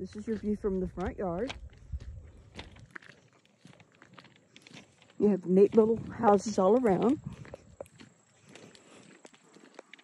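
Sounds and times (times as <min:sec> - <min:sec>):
footsteps on gravel and grass: 0:00.0 - 0:10.0.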